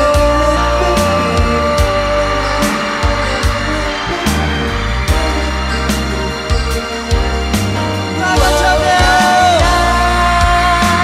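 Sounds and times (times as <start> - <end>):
bass line: 0.0 - 11.0
drum hits: 0.0 - 11.0
held chords: 0.0 - 11.0.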